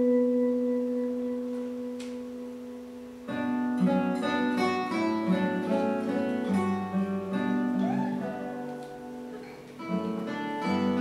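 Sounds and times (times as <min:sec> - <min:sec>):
acoustic guitars and bass playing: 0:00.0 - 0:11.0.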